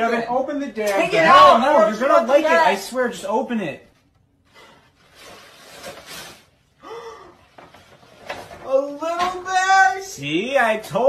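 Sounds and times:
person gasping: 0:06.8 - 0:07.4.

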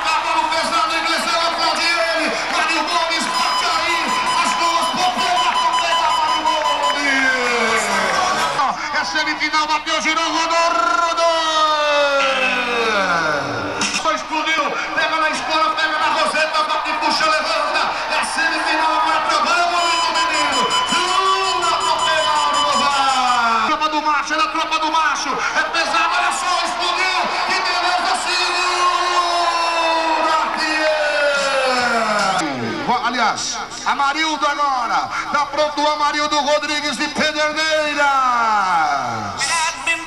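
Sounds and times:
men shouting and whooping: 0:00.0 - 0:08.8, 0:10.8 - 0:13.8, 0:14.9 - 0:23.7, 0:25.1 - 0:32.8
crowd noise: 0:00.0 - 0:40.0.

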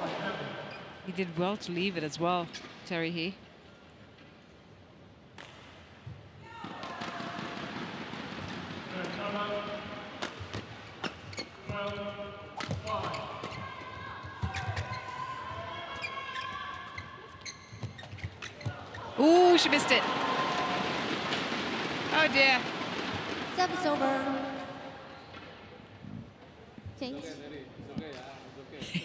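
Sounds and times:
court shoes squeaking: 0:10.2 - 0:19.2.

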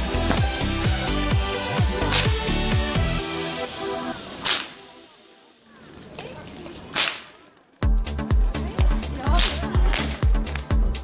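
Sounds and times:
electronic dance music: 0:00.0 - 0:05.2
whip crack: 0:02.0 - 0:02.5, 0:04.3 - 0:04.9, 0:06.8 - 0:07.4, 0:09.4 - 0:10.7.

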